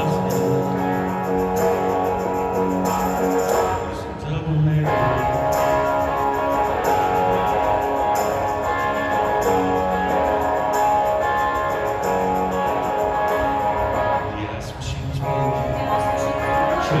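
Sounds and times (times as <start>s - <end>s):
live rock band playing: 0.0s - 4.2s, 4.8s - 17.0s
electric guitar: 0.0s - 17.0s.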